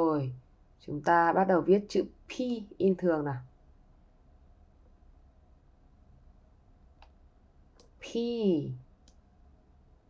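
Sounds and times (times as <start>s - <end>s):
faint sharp click: 7.0s - 7.2s, 9.0s - 9.2s.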